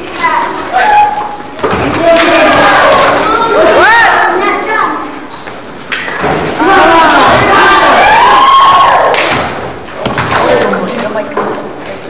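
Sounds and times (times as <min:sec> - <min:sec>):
loud shout: 0:02.1 - 0:05.0, 0:06.5 - 0:09.3.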